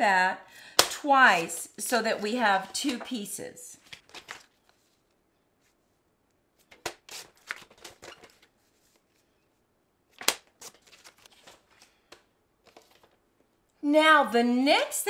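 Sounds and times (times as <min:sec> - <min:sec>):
paper rustling: 0:01.3 - 0:06.0, 0:06.6 - 0:13.2.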